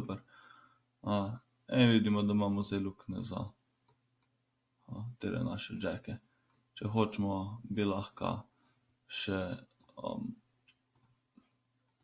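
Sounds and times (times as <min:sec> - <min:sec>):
faint mouse clicks: 0:03.8 - 0:04.4, 0:06.4 - 0:06.7, 0:09.6 - 0:12.0.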